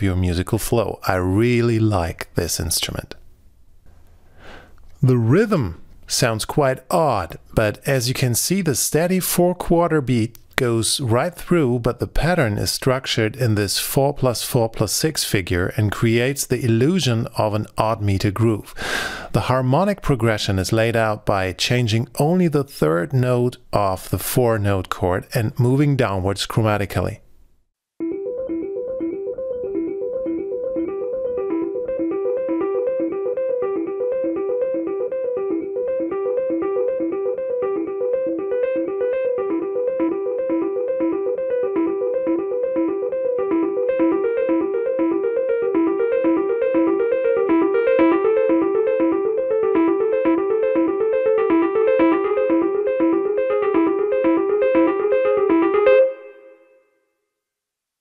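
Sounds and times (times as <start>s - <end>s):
electric piano broken chords: 28.0s - 56.8s.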